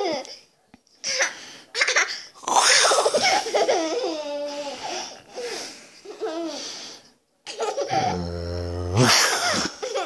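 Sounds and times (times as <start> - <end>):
little girl laughing: 9.0 - 10.0.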